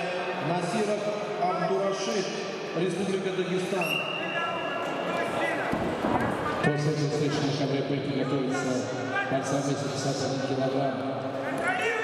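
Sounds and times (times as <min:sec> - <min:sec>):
voices echoing in a hall: 0:00.0 - 0:12.0.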